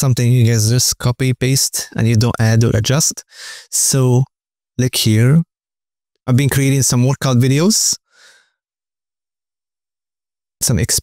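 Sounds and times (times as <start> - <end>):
man breathing: 3.3 - 3.7, 8.0 - 8.6.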